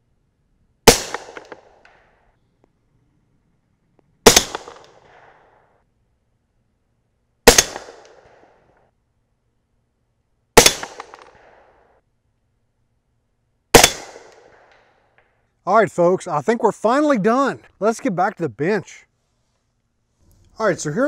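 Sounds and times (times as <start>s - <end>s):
suppressed rifle shots: 0.8s - 2.2s, 4.2s - 5.6s, 7.4s - 8.6s, 10.6s - 11.9s, 13.7s - 15.3s.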